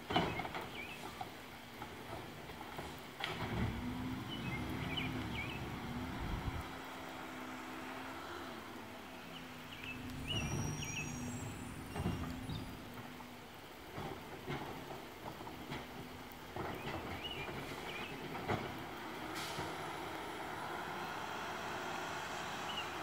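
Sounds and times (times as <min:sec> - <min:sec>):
distant truck diesel engine: 0:00.0 - 0:23.0.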